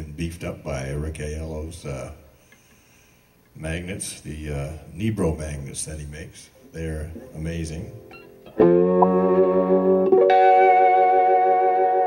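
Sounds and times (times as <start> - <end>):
lap steel guitar chords: 7.1 - 12.0.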